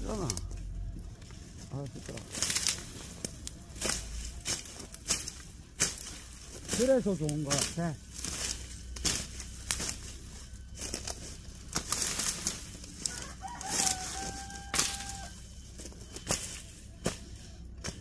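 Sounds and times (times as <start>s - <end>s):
sickle chopping dry brush: 1.3s - 18.0s
rooster crowing: 12.9s - 15.6s.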